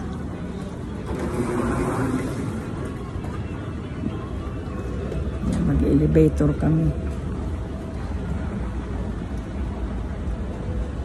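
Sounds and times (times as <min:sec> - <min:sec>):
airport terminal background noise: 0:00.0 - 0:11.0.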